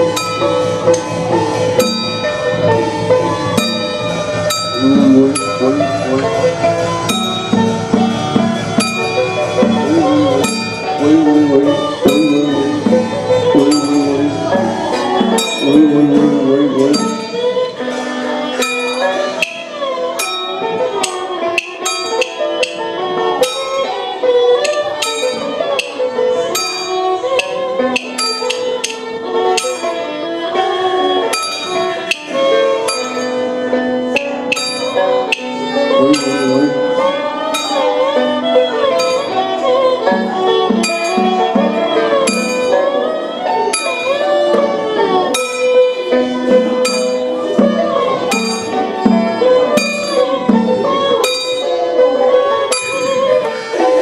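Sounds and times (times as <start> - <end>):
sharp percussion strokes: 0.0 - 23.9, 31.3 - 38.2, 43.7 - 51.8
traditional instrument melody: 0.0 - 54.0.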